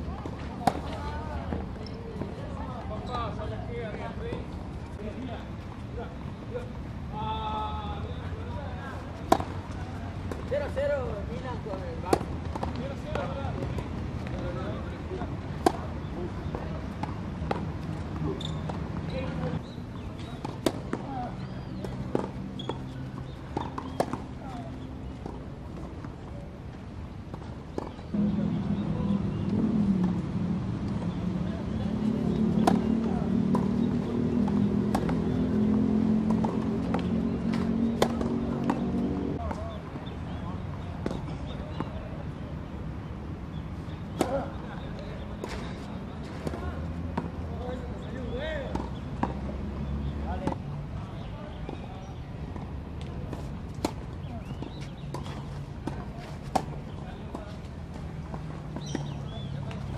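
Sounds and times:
racket hitting tennis ball: 0.6 - 1.0, 9.2 - 10.5, 32.3 - 39.6.

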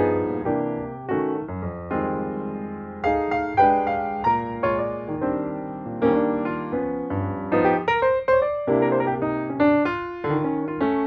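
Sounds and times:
slow piano melody: 0.0 - 11.0.

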